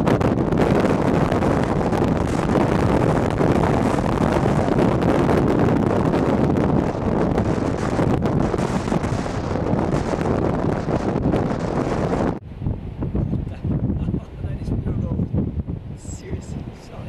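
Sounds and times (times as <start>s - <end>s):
gusty wind noise: 0.0s - 17.0s
wind buffeting microphone: 0.0s - 17.0s.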